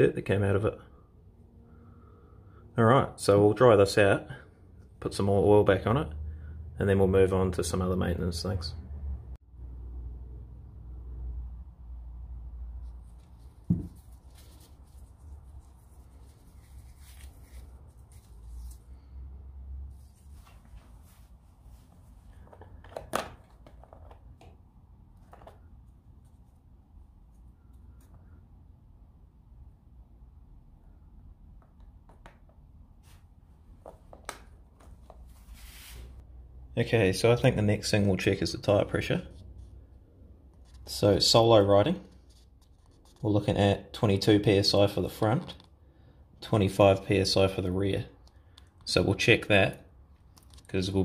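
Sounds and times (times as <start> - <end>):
faint soft rustling: 12.8 - 19.2, 19.8 - 22.8.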